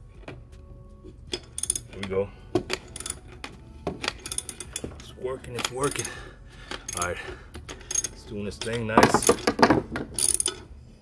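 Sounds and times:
socket wrench ratchet clicking: 1.4s - 2.1s, 2.7s - 5.0s, 6.7s - 10.6s.

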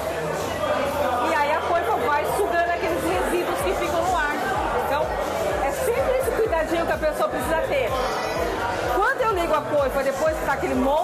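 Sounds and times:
chatter of people: 0.0s - 11.0s
people talking: 0.0s - 11.0s.

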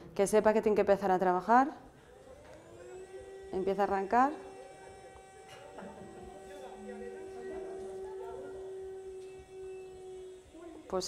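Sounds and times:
drone motor humming: 1.9s - 11.0s.

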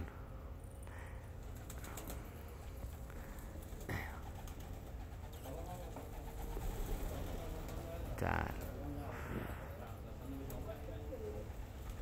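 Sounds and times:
pigeons cooing: 1.4s - 7.7s.

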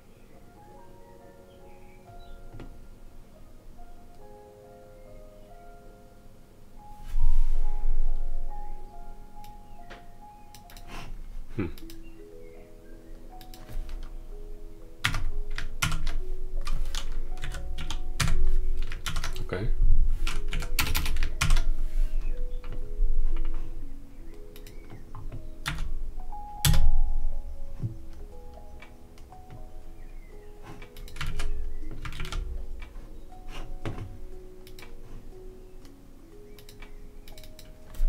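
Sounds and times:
background music with held notes: 0.0s - 38.0s
computer keyboard typing: 10.5s - 10.9s, 15.0s - 19.6s, 20.2s - 21.8s, 24.5s - 25.9s, 26.6s - 26.9s, 30.8s - 35.0s, 36.6s - 37.8s.

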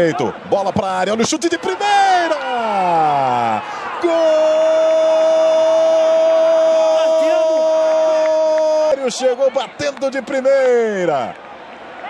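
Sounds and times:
commentator shouting goal cry: 0.0s - 11.2s.

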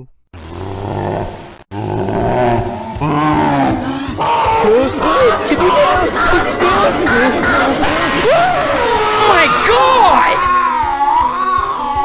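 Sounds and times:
deep monster roar: 0.4s - 10.5s.

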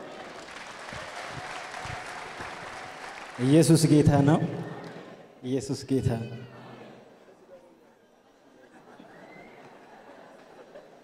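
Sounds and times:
crowd applauding: 0.0s - 5.1s.

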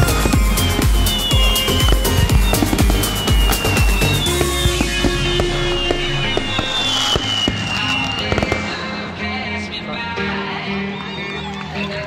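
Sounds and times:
firework shells bursting and crackling: 0.0s - 9.0s
music: 0.0s - 12.0s.

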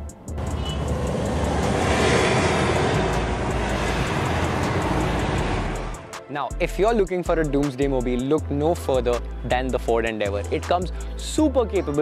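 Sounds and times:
diesel engine rushing: 0.0s - 6.3s
background music with low beat: 0.0s - 12.0s.

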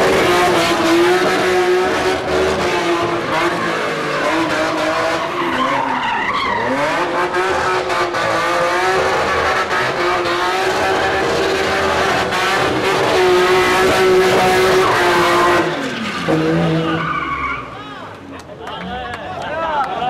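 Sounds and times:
car engine at high revs: 0.0s - 17.3s
tyres squealing: 2.4s - 7.5s, 10.6s - 18.0s.

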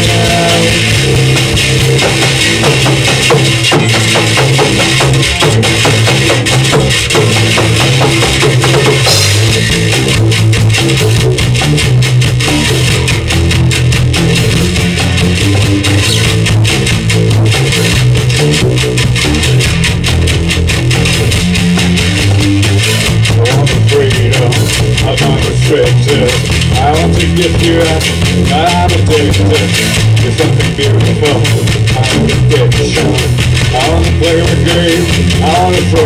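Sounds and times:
loud live rock band: 0.0s - 36.0s.

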